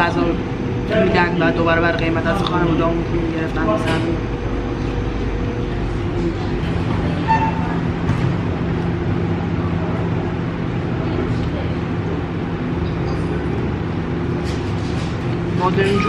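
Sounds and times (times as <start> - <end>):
low hum: 0.0 - 16.0.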